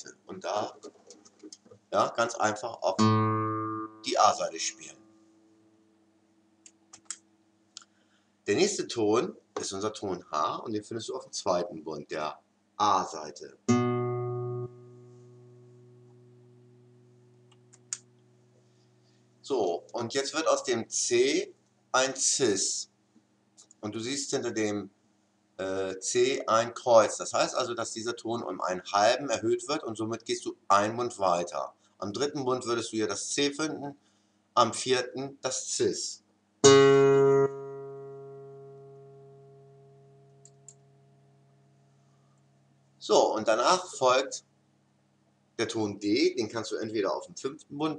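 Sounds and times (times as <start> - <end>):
single guitar note ringing: 13.7 - 17.0, 36.7 - 41.4.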